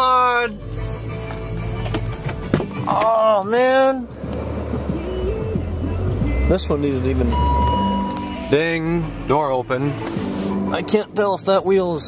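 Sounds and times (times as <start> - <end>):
car engine low rumble: 0.0 - 12.0.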